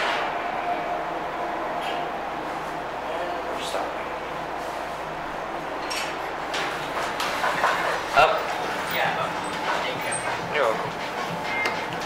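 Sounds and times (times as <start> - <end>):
people talking: 3.0 - 4.3.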